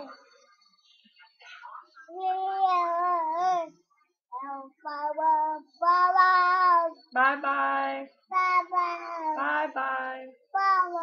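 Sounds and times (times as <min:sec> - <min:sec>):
toddler sing-song vocalizing: 0:02.1 - 0:03.8, 0:04.4 - 0:07.0, 0:08.2 - 0:09.5, 0:10.4 - 0:11.0.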